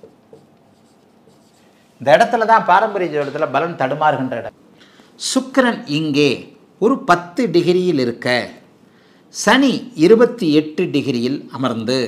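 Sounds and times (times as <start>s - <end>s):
marker rubbing on whiteboard: 0.0s - 2.4s.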